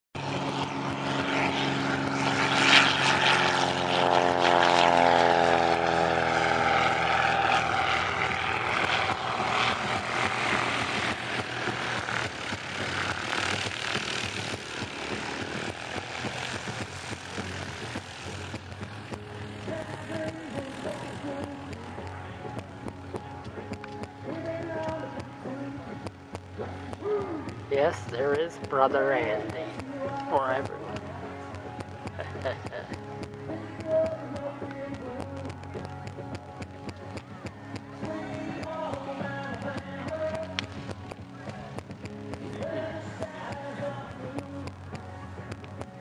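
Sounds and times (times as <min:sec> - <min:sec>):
propeller airplane flying past: 0:00.2 - 0:46.0.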